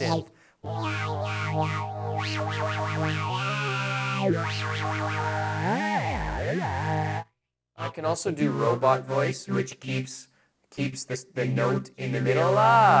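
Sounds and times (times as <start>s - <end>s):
synthesized voice tone: 0.0s - 7.2s, 7.8s - 9.6s.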